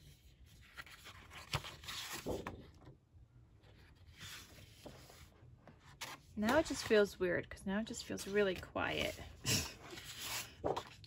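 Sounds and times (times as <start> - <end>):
paper sheets rustling and sliding: 0.0 - 2.8, 8.3 - 11.0.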